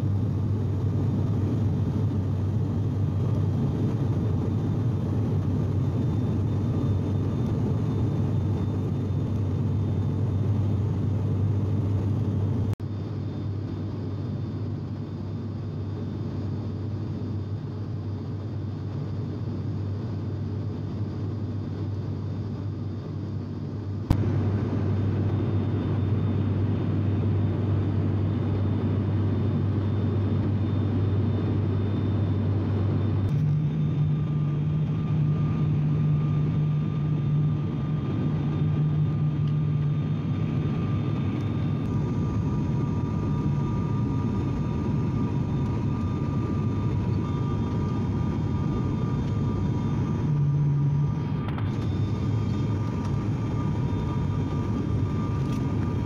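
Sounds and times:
airliner engine and propeller drone: 0.0s - 56.0s.

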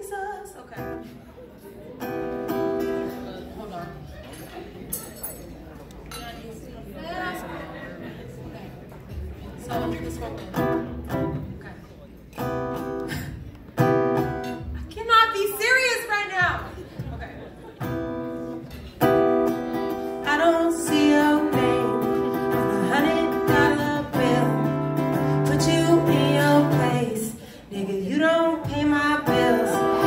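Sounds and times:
woman singing: 0.0s - 0.8s, 20.1s - 30.0s
acoustic guitar chords: 2.0s - 3.5s, 12.4s - 14.8s, 17.8s - 30.0s.

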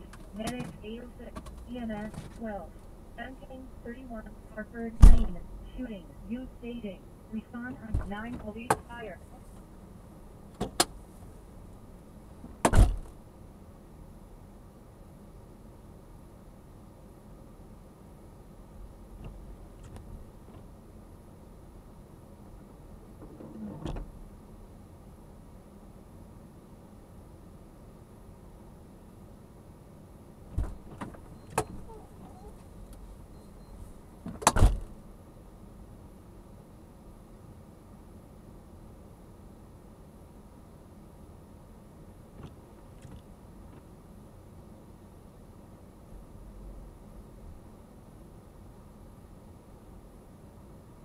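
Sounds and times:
dispatcher voice over radio: 0.3s - 9.3s
car door clicks and knocks: 10.5s - 10.9s, 12.4s - 13.2s, 30.5s - 31.9s, 34.2s - 34.9s
car door shutting: 12.4s - 13.2s, 23.2s - 24.2s, 30.5s - 32.7s, 34.2s - 35.0s.

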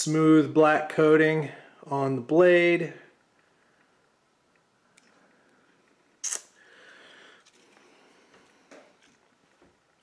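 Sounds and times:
soft breath: 6.6s - 9.2s.

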